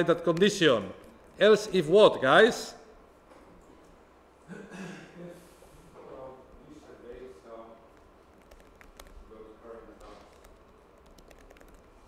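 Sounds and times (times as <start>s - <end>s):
computer keyboard typing: 8.0s - 12.0s.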